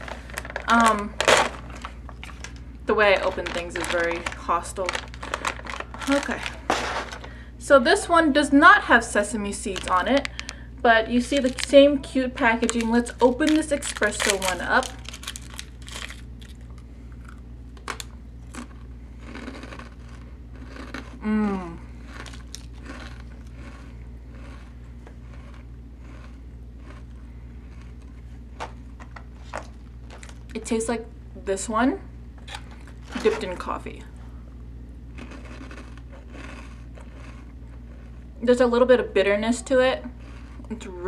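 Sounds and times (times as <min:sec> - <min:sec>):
crunching wafer cookie: 0:00.0 - 0:07.4, 0:09.2 - 0:30.6, 0:35.1 - 0:38.4
plastic wrapper crackling: 0:00.0 - 0:07.4, 0:09.6 - 0:10.6, 0:11.2 - 0:18.7, 0:22.1 - 0:23.5, 0:29.4 - 0:30.6
low steady hum: 0:00.0 - 0:41.0.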